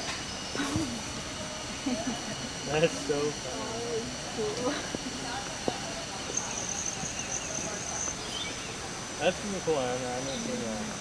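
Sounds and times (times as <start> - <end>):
indistinct voices: 0.0 - 11.0
steady background hiss: 0.0 - 11.0.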